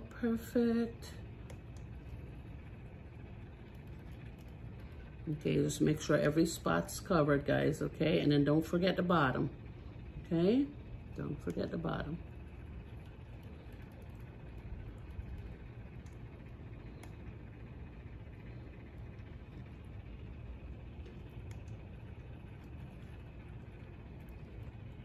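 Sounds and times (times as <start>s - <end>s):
small motor humming: 0.0s - 25.0s.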